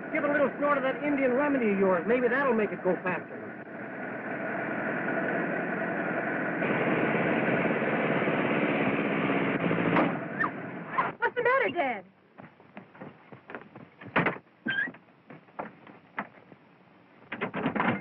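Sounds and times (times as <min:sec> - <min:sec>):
truck engine running: 0:00.0 - 0:18.0
horses galloping: 0:11.4 - 0:16.7.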